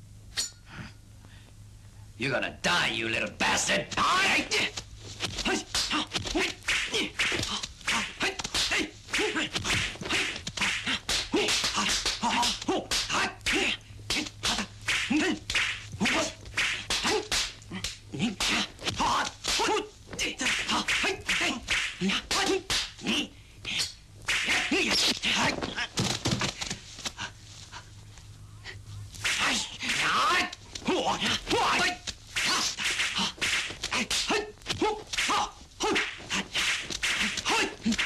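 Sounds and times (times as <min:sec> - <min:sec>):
swishing smacking fight blows: 0:03.8 - 0:23.1, 0:23.7 - 0:27.4, 0:29.2 - 0:38.0.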